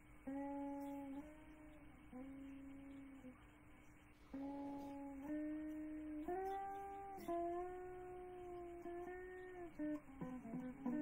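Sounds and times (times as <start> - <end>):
slow melody of long held notes: 0.0 - 11.0.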